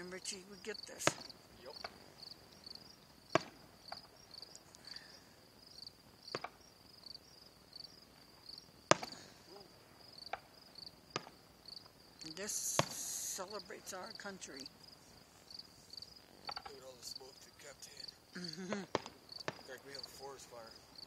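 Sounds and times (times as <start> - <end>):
crickets chirping: 0.0 - 21.0
distant firework bangs: 0.9 - 7.3, 8.0 - 13.7, 18.9 - 21.0.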